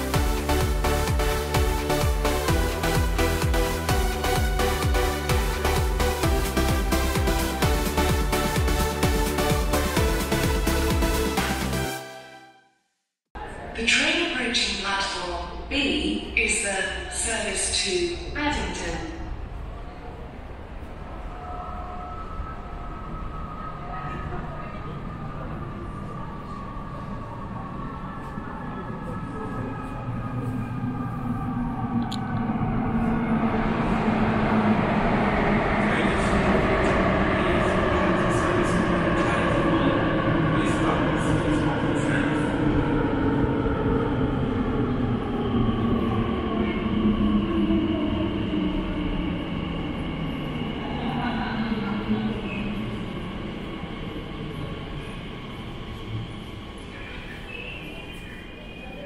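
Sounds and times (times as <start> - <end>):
train rumbling with whine: 14.8 - 59.0.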